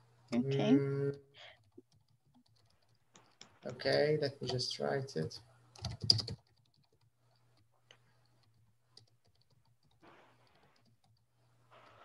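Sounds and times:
low steady hum: 0.0 - 1.9
computer keyboard keystrokes: 5.8 - 7.1.

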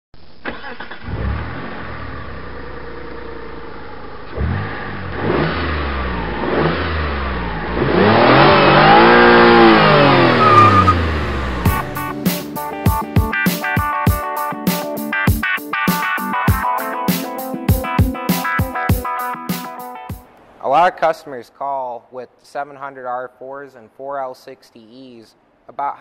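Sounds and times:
car engine starting: 0.4 - 14.1
car engine idling and revving: 0.6 - 13.0.

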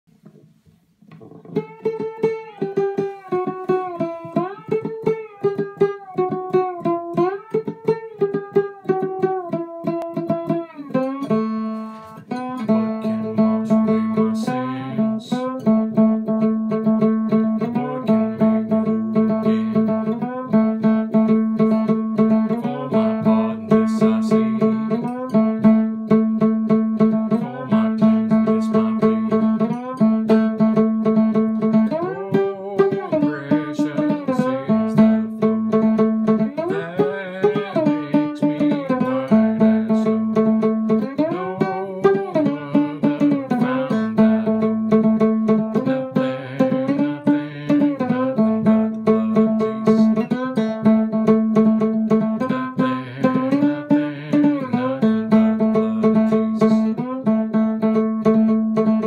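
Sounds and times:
plucked one-string slide instrument: 0.2 - 59.0.

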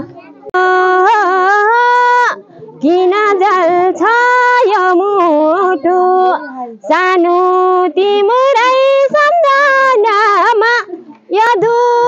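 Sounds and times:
woman singing unaccompanied: 0.6 - 12.0.

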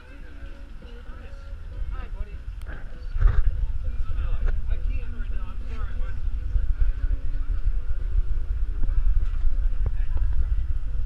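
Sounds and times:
people talking in background: 0.0 - 11.0
heavy low rumble: 0.8 - 11.0.

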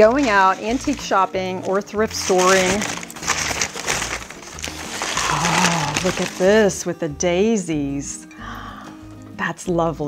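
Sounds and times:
packing paper crinkling: 0.0 - 6.9
quiet background music: 0.0 - 10.0.

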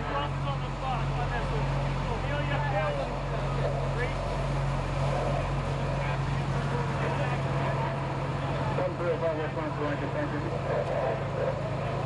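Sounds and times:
fire engine pump droning: 0.0 - 12.0
voices talking: 0.0 - 12.0.

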